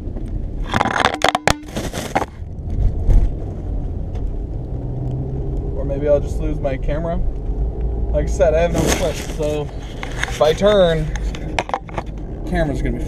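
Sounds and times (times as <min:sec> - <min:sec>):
car engine rumble: 0:00.0 - 0:13.0
road noise inside car: 0:00.0 - 0:13.0.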